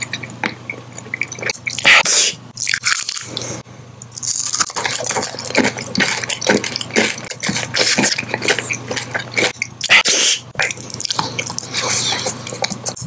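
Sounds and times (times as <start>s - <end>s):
lip smacking and chewing: 0.0s - 1.9s, 4.0s - 13.0s.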